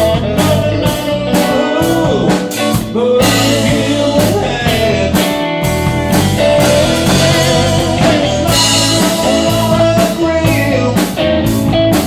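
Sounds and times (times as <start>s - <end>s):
bass: 0.0s - 12.0s
drum kit: 0.0s - 12.0s
electric guitar: 0.0s - 12.0s
keyboards: 0.0s - 12.0s.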